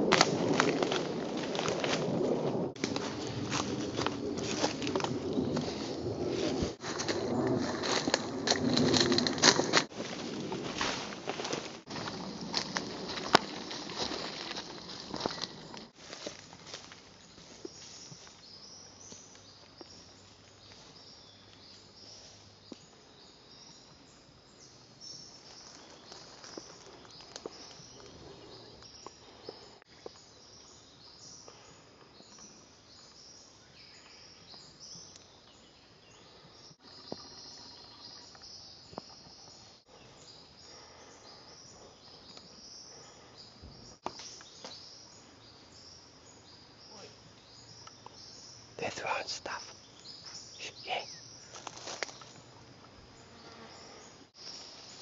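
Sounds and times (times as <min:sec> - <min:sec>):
footsteps in dry leaves: 0:00.0 - 0:18.5, 0:50.9 - 0:52.4
birds and insects chirping: 0:00.0 - 0:55.0.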